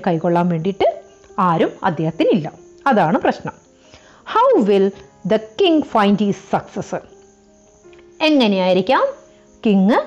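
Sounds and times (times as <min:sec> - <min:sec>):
faint background tones: 0:00.0 - 0:10.0.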